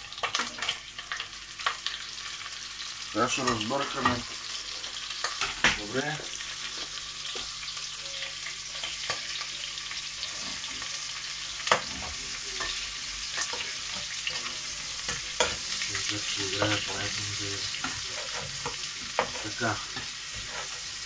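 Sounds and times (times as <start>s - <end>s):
food sizzling in a pot: 0.0s - 21.0s.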